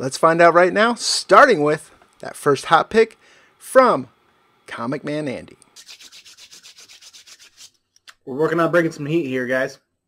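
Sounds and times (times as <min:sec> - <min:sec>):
palms rubbing together: 0:05.7 - 0:08.2.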